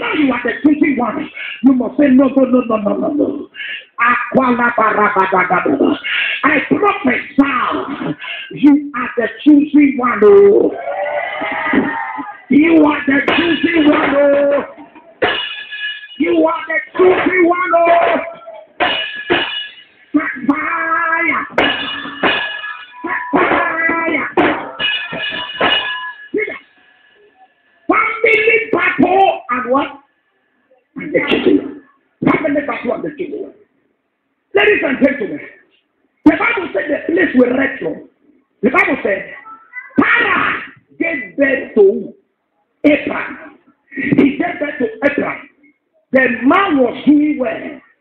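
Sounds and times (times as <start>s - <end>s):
man preaching: 0.0s - 10.9s, 11.7s - 15.2s, 16.2s - 18.8s, 20.0s - 26.7s, 27.3s - 30.2s, 30.8s - 33.7s, 34.5s - 42.2s, 42.8s - 48.0s.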